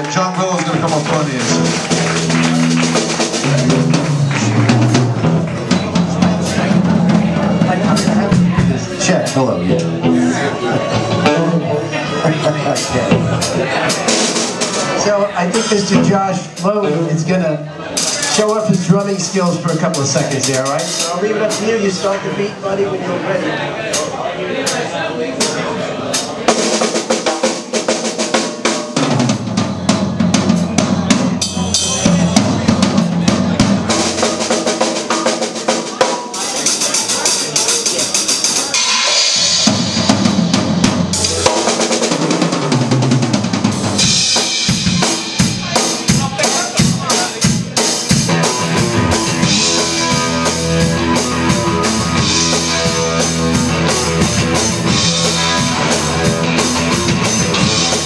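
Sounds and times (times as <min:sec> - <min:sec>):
drum kit playing rock beat: 0:00.0 - 0:22.7, 0:23.9 - 0:58.0
band instruments: 0:00.0 - 0:58.0.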